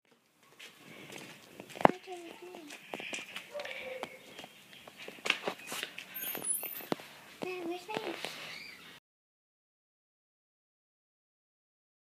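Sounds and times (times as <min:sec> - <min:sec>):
child talking quietly: 0:01.9 - 0:02.9, 0:07.4 - 0:08.4.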